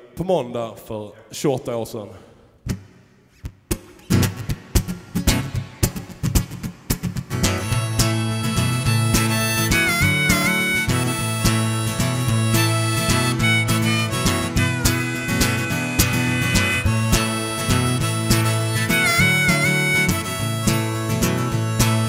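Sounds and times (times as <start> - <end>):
acoustic guitar strumming: 2.7 - 22.0
harmonica sustained notes: 7.4 - 22.0.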